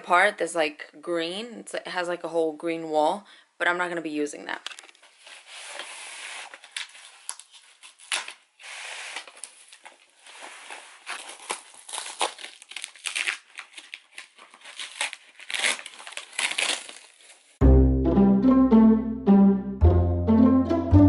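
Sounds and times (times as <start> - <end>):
cardboard ripping and crinkling: 5.2 - 17.6
loud background music: 17.6 - 21.0.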